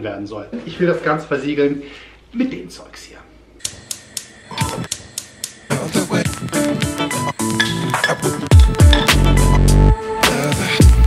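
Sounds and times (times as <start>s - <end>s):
background music with deep beats: 5.8s - 11.0s.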